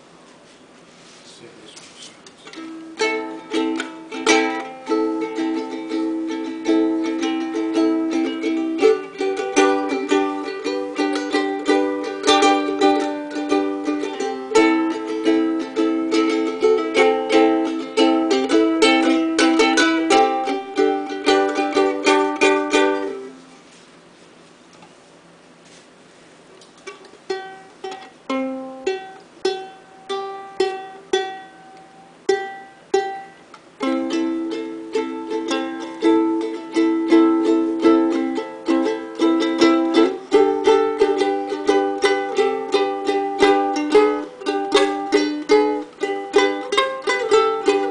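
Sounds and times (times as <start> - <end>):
ukulele strumming: 2.4 - 23.8, 26.6 - 47.9.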